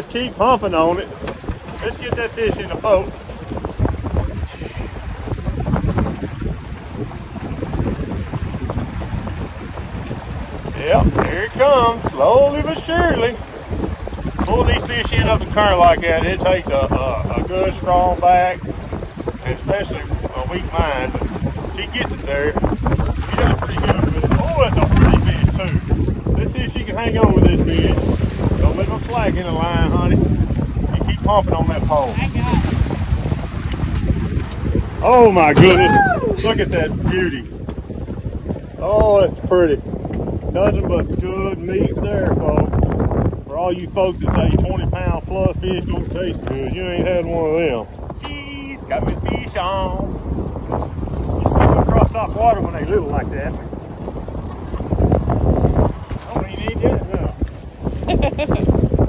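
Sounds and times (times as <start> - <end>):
outboard motor running: 0.0 - 59.0
wind buffeting microphone: 0.0 - 59.0.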